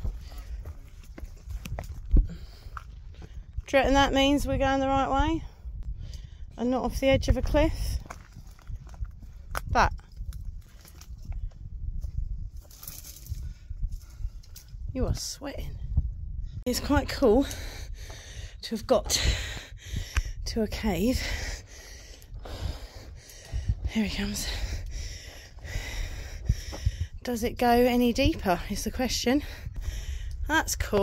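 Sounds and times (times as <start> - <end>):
footsteps on rock and brush: 0.0 - 2.9
low rumble: 0.0 - 31.0.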